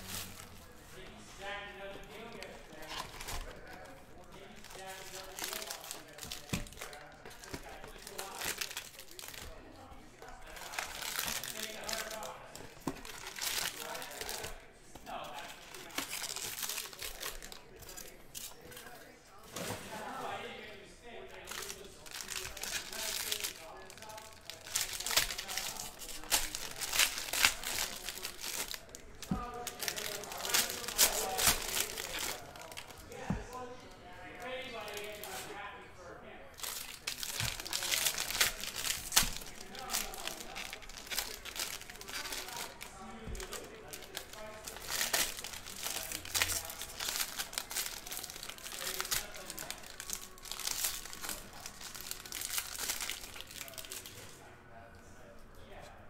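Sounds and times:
foil wrappers crinkling and tearing: 0.0s - 19.9s, 21.3s - 35.7s, 36.6s - 54.3s.

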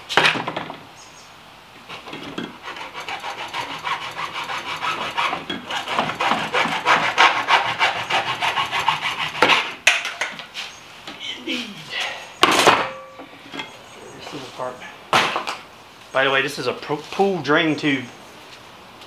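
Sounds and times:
hacksaw cutting plastic: 1.9s - 9.8s.

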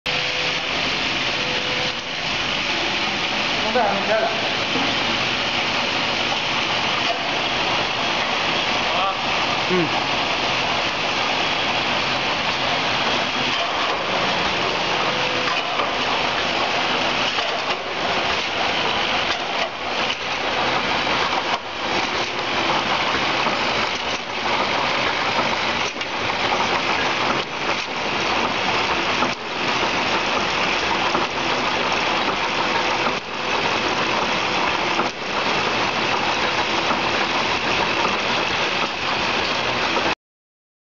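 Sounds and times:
capping machine running: 0.1s - 40.2s.

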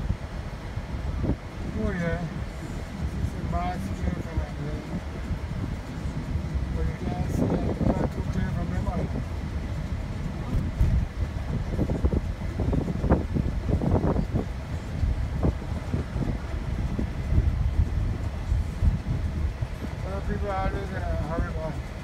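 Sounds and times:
road and engine rumble in car: 0.0s - 22.0s.

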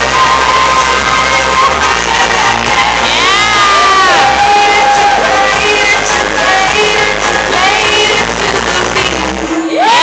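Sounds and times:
audience cheering with whoops: 0.0s - 5.9s
song playing: 0.0s - 10.0s.

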